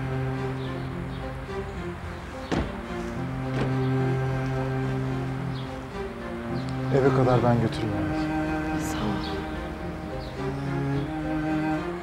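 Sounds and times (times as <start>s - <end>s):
background music: 0.0s - 12.0s
car doors slamming shut: 2.4s - 4.0s.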